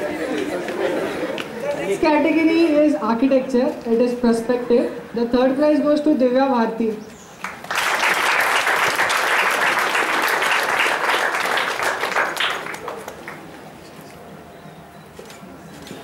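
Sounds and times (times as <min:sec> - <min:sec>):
audience applauding: 0:07.4 - 0:13.6.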